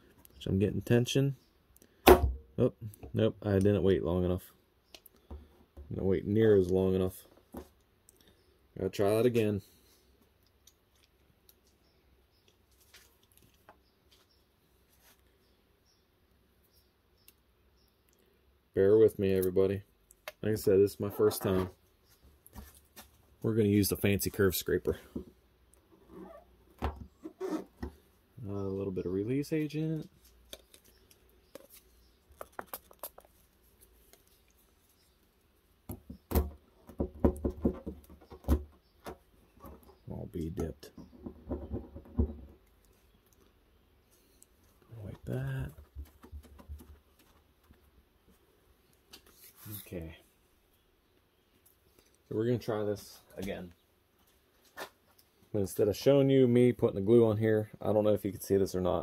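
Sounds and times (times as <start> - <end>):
sharp knocks and taps: 35.9 - 39.9.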